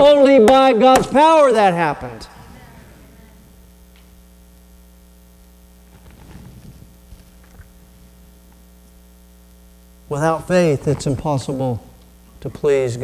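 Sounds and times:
electrical mains hum: 0:00.0 - 0:13.0
faint clicks and rustles: 0:05.4 - 0:09.1.

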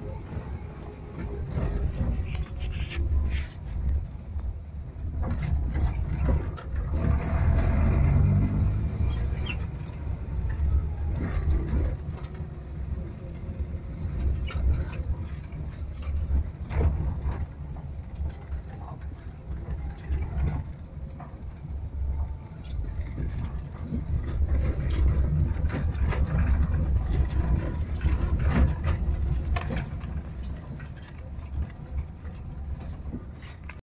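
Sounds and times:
body and suspension rattling: 0:00.0 - 0:33.8
van engine running under load: 0:00.0 - 0:33.8.

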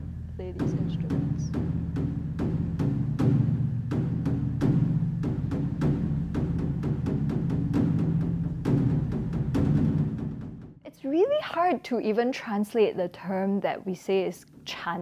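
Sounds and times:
large drum struck with sticks: 0:00.0 - 0:10.7.

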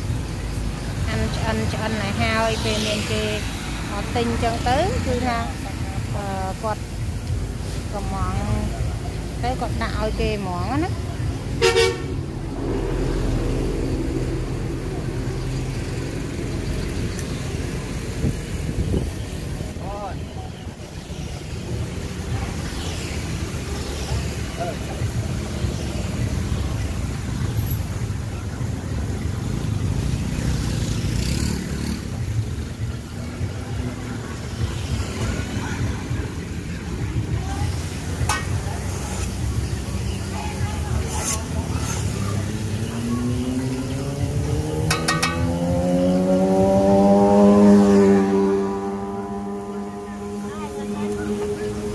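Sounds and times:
street traffic rumble: 0:00.0 - 0:51.9
vehicle horn toot: 0:11.6 - 0:12.1.

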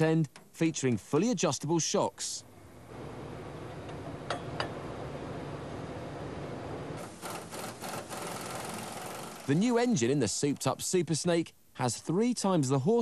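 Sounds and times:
workshop background hum: 0:00.0 - 0:12.1.

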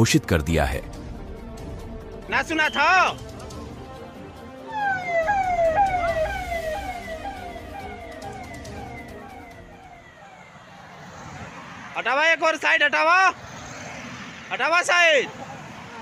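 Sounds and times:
vehicle siren with falling sweeps: 0:04.6 - 0:12.0.

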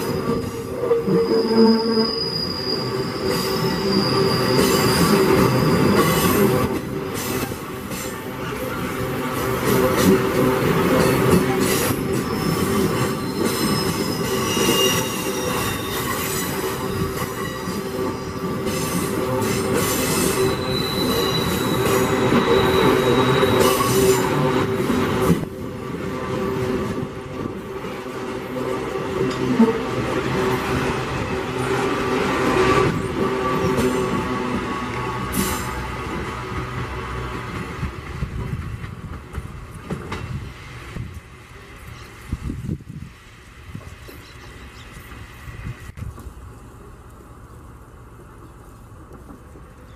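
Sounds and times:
high-pitched wheel squeals: 0:00.0 - 0:07.5, 0:11.6 - 0:25.2
steel wheels rumbling on rails: 0:00.0 - 0:49.9.

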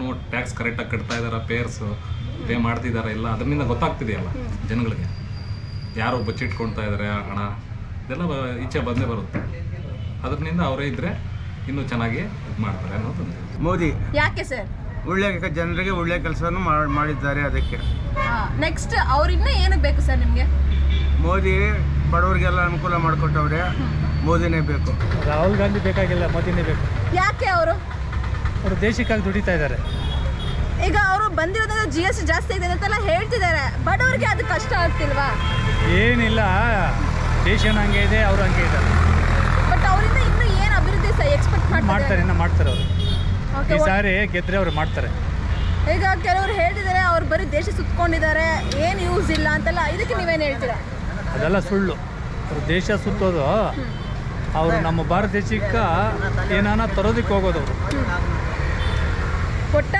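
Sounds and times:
road traffic rumble: 0:00.0 - 0:59.9.

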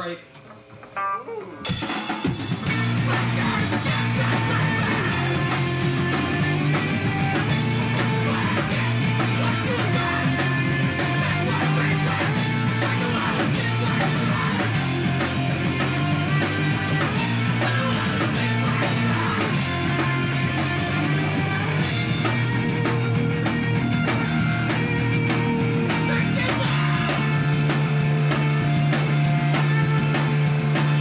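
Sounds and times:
distorted electric guitar: 0:00.0 - 0:31.0
drum kit: 0:00.0 - 0:31.0
bass guitar: 0:00.6 - 0:31.0.

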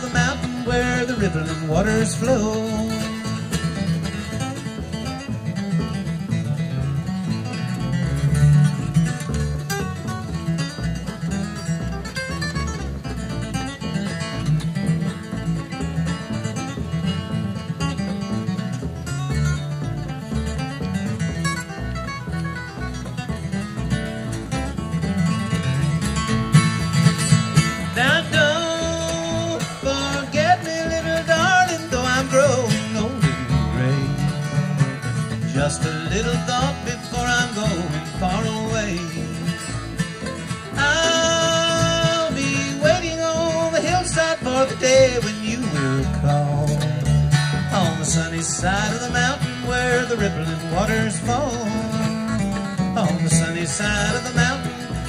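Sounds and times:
bluegrass band playing: 0:00.0 - 0:55.0
lead acoustic guitar: 0:00.0 - 0:55.0.

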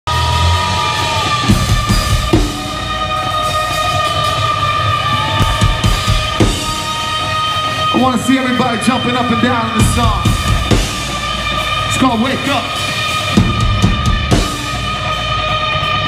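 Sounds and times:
live rock band playing: 0:00.1 - 0:16.0
long held high note: 0:00.5 - 0:16.0.

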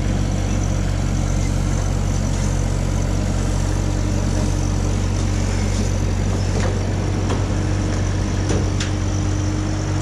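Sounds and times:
mini excavator diesel engine: 0:00.0 - 0:10.0.

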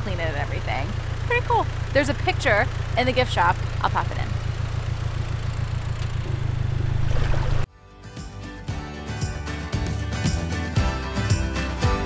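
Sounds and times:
boat engine droning: 0:00.0 - 0:07.7.

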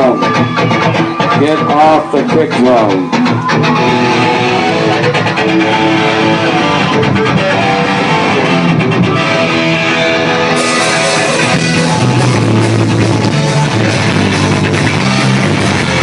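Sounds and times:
punk rock band playing: 0:00.0 - 0:16.0.

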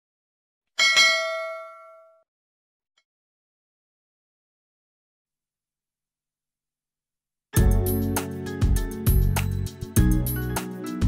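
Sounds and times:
bell ding: 0:00.8 - 0:02.2.

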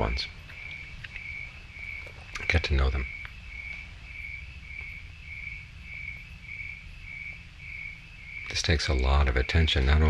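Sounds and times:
cricket chirping: 0:00.0 - 0:10.0
faint low rumble: 0:00.0 - 0:10.0.

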